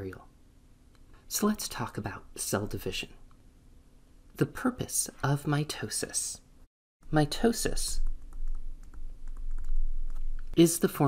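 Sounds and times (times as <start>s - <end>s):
steady low hum: 7.0s - 10.7s.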